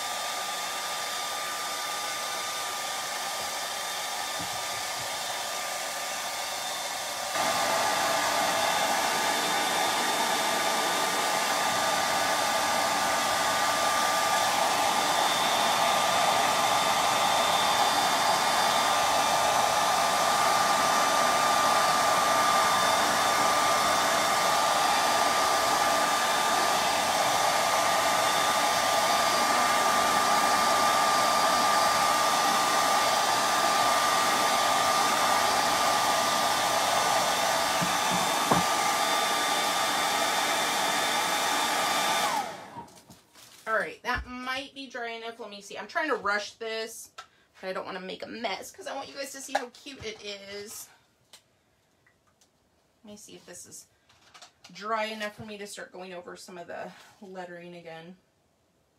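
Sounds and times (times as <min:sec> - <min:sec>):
hair dryer blowing with whine: 0:00.0 - 0:43.2.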